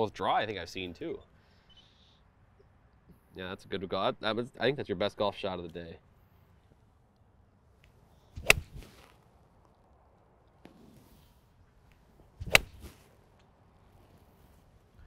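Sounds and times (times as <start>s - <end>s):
golf iron striking ball: 8.4s - 9.1s, 12.4s - 13.1s.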